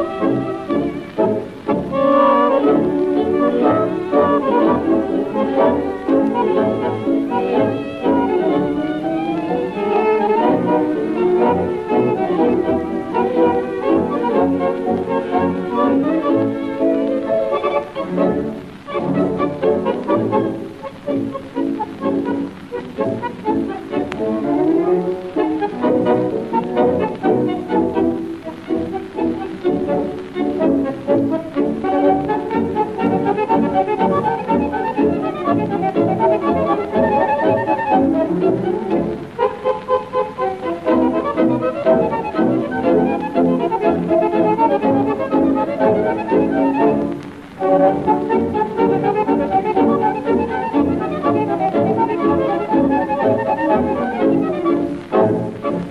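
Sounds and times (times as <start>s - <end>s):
orchestral tango music with violins: 0.0s - 55.9s.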